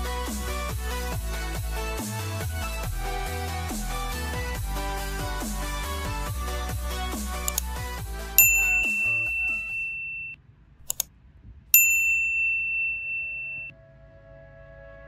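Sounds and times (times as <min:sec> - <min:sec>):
electronic music with steady beat: 0:00.0 - 0:10.1
quick clicks: 0:07.4 - 0:07.7, 0:10.8 - 0:11.1
bell-like electronic dings: 0:08.4 - 0:10.4, 0:11.8 - 0:13.7.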